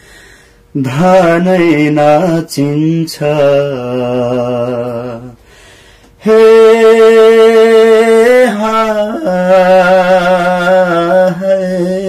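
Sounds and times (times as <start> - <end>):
man singing unaccompanied: 0.7 - 5.5, 6.2 - 12.0.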